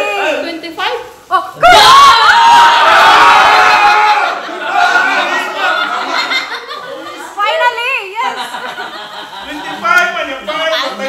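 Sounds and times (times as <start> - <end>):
people shouting and cheering: 1.6 - 6.3.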